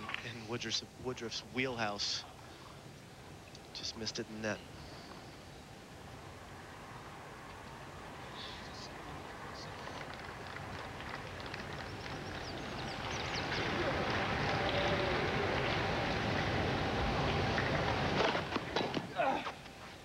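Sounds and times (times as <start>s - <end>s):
crowd noise: 8.4s - 19.1s.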